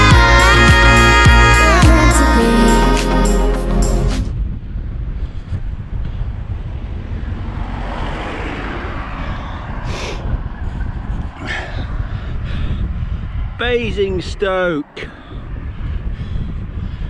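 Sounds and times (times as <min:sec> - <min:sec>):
wind buffeting microphone: 0:04.3 - 0:17.0.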